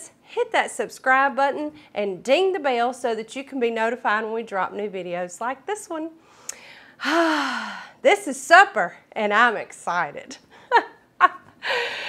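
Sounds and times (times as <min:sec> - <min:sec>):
woman sighing: 0:06.5 - 0:08.0, 0:11.6 - 0:12.0.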